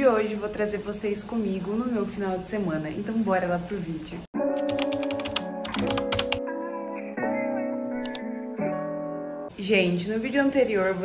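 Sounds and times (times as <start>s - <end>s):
soft music with held chords: 4.4s - 9.6s
keyboard typing clicks: 4.6s - 6.4s, 8.0s - 8.3s.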